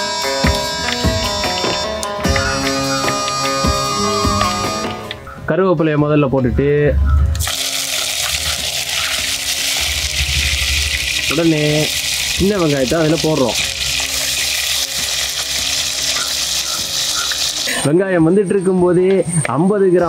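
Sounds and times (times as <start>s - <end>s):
food sizzling in hot oil: 7.4s - 17.9s.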